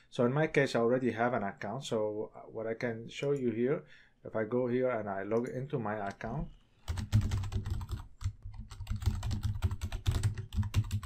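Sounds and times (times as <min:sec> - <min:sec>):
fast typing on keyboard: 0:06.9 - 0:11.0.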